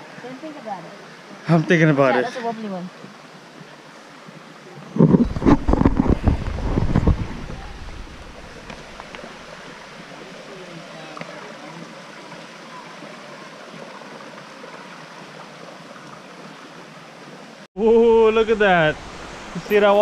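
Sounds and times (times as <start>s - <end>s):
creek flowing over stones: 0.0s - 17.7s, 18.3s - 20.0s
wind buffeting microphone: 4.9s - 9.8s.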